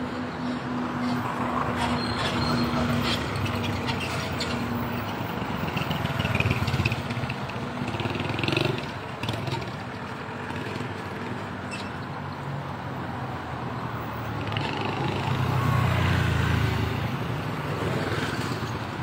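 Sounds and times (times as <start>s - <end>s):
vehicle engines running: 0.0s - 19.0s
motorbike passing close: 5.3s - 11.9s, 14.3s - 19.0s.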